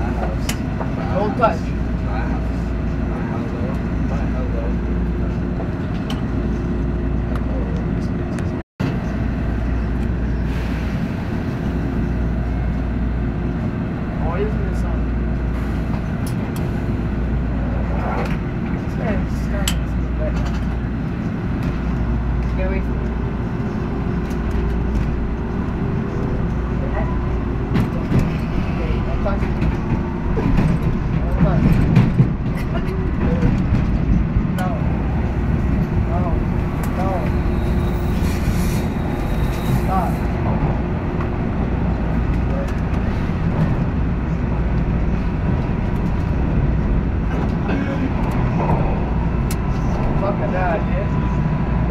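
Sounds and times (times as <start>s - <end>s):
train motor hum: 0.0s - 51.9s
wheels rumbling on rail: 0.0s - 51.9s.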